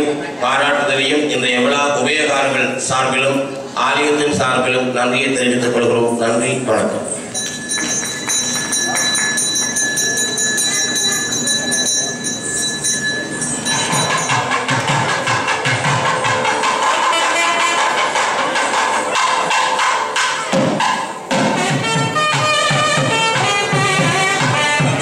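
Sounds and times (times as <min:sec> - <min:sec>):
drum strokes: 0:12.2 - 0:25.0
reedy wind instrument melody: 0:13.4 - 0:25.0.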